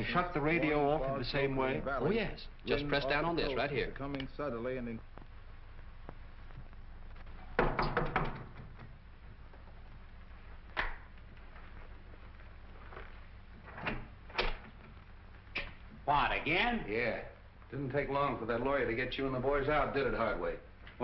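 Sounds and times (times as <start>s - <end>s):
film soundtrack hum and hiss: 0.0s - 21.0s
door opening and shutting: 7.4s - 8.9s, 13.6s - 15.0s.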